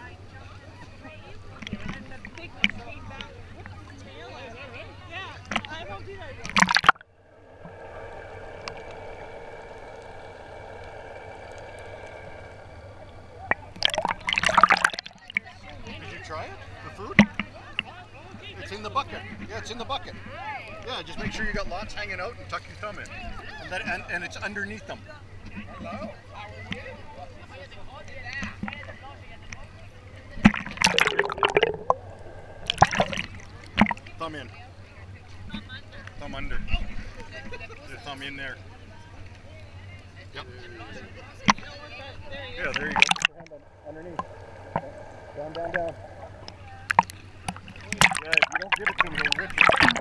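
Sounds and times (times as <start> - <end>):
underwater hum: 5.4 - 18.0, 30.3 - 34.4, 41.4 - 50.0
water splashes and gurgles: 6.4 - 15.6, 30.4 - 34.2, 42.6 - 50.0.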